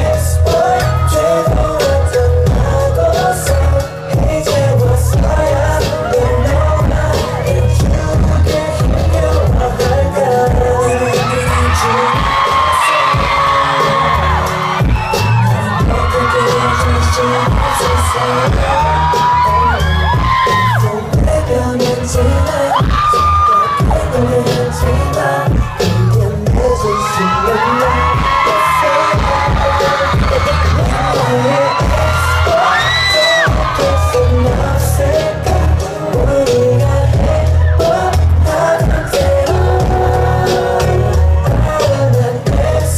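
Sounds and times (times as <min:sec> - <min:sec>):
fans screaming and cheering: 0:00.0 - 0:42.9
group singing live: 0:00.0 - 0:42.9
pop backing track with bass beat: 0:00.0 - 0:42.9.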